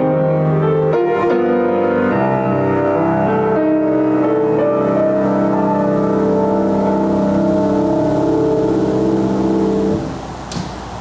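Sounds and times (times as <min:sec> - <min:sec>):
room hiss: 0:00.0 - 0:11.0
church organ chord: 0:01.2 - 0:10.3.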